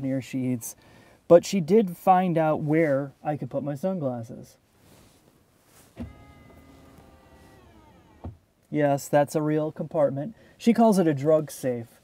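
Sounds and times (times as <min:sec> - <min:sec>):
electric motor whine: 0:06.0 - 0:08.4.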